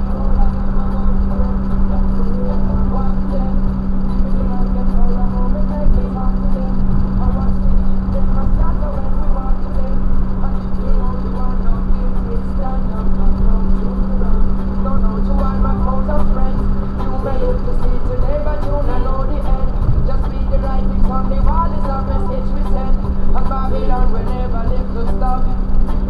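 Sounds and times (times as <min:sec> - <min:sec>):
voice-like sound: 0:00.0 - 0:25.7
car engine and tyres droning: 0:00.0 - 0:26.0.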